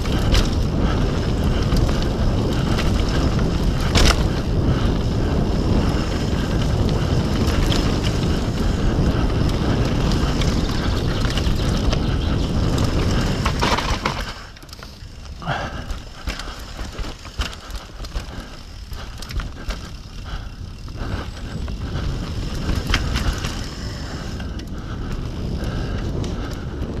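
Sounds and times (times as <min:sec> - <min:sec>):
tyres rolling over dirt: 0:00.0 - 0:24.8
bike clicks and knocks: 0:00.0 - 0:27.0
wind on microphone: 0:00.0 - 0:27.0.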